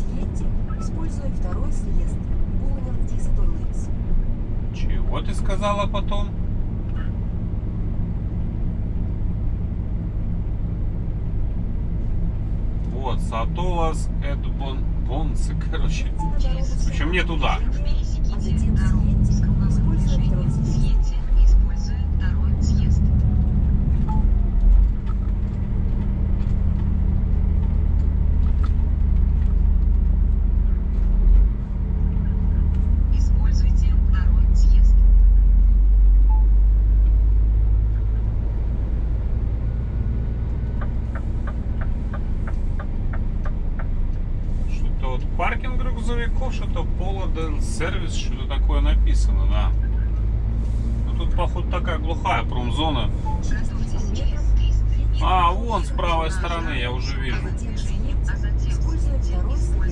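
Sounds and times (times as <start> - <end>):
truck diesel engine drone: 0.0 - 59.9.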